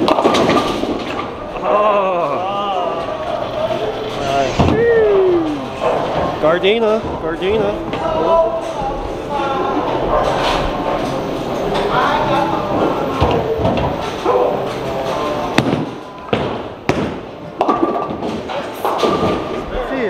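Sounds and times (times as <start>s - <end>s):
bowling ball thudding and rolling: 0.0s - 1.6s, 15.4s - 19.7s.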